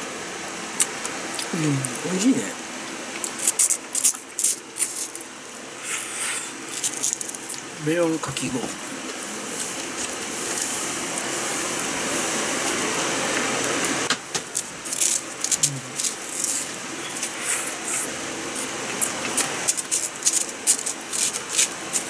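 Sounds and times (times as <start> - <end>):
spoon scraping shaved ice: 14.8 - 22.0.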